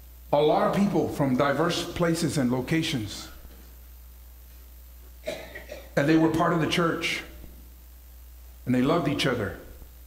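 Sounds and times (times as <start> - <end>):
man speaking: 0.3 - 3.4, 6.0 - 7.4, 8.7 - 9.7
man coughing: 5.2 - 6.0.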